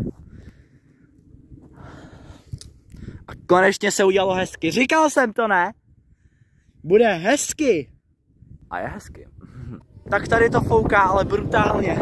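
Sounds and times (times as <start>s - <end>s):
wind buffeting microphone: 0.0s - 4.9s, 5.7s - 12.0s.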